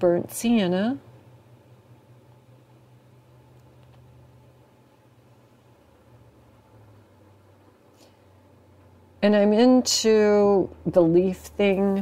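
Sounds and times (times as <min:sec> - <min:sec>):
soft room hiss: 0:00.0 - 0:12.0
space heater humming: 0:00.0 - 0:12.0.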